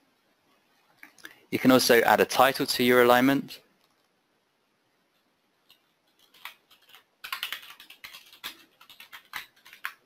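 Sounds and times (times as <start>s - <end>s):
computer keyboard typing: 5.6s - 10.0s.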